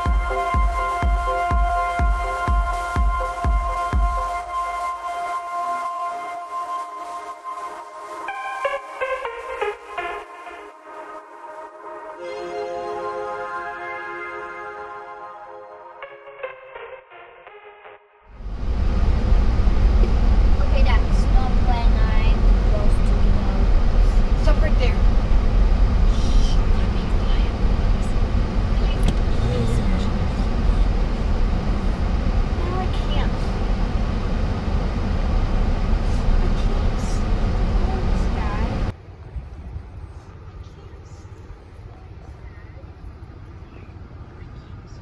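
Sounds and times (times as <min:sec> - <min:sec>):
quiet outdoor ambience: 0:18.3 - 0:45.0
car cabin rumble: 0:18.4 - 0:45.0
faint muffled voices: 0:39.1 - 0:45.0.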